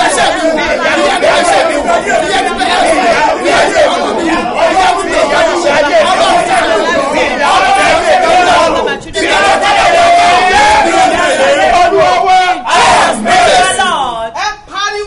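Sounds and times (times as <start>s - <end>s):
woman praying aloud: 8.5s - 9.3s, 12.9s - 14.7s.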